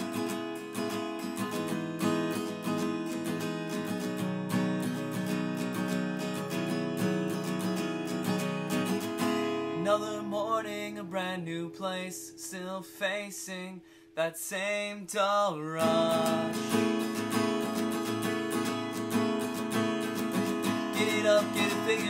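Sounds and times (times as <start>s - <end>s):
acoustic guitar strumming: 0.0s - 22.0s
man singing: 9.7s - 17.1s, 20.7s - 22.0s.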